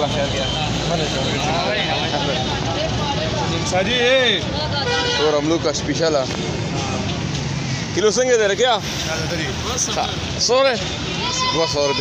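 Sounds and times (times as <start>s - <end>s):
traffic noise: 0.0s - 12.0s.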